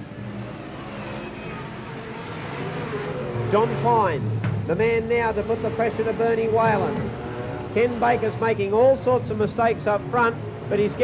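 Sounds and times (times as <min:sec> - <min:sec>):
racing car engines at speed: 0:00.0 - 0:11.0.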